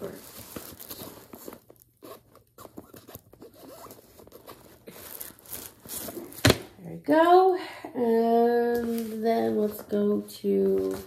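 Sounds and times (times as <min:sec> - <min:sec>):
handbag rustling: 0:00.0 - 0:06.4.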